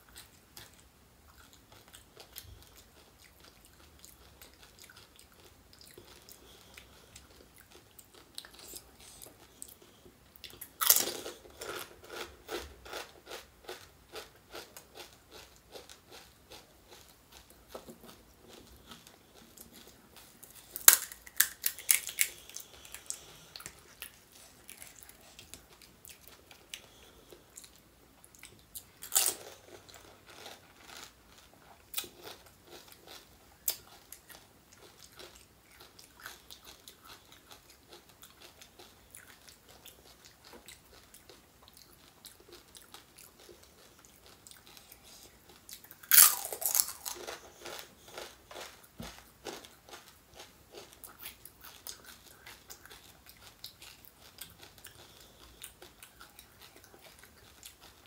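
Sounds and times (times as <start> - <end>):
faint chewing: 0.0 - 58.0
crisp shell crunch: 20.5 - 22.5, 46.0 - 50.0.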